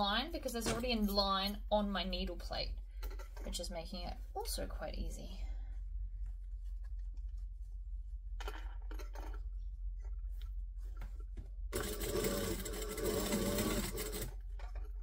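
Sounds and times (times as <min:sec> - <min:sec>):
sewing machine stitching: 0:11.7 - 0:15.0.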